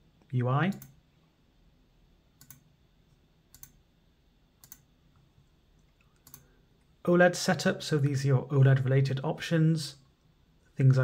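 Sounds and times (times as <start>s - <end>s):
computer mouse clicks: 2.4s - 2.7s, 3.5s - 3.8s, 4.6s - 4.9s, 5.8s - 6.5s.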